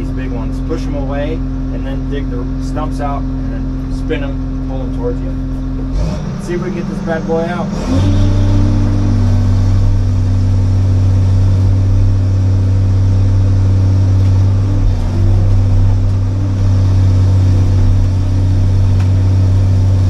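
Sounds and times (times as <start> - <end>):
excavator diesel engine running: 0.0 - 20.0.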